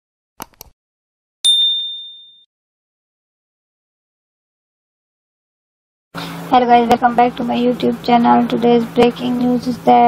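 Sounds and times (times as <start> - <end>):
notification bell ding: 1.5 - 2.5.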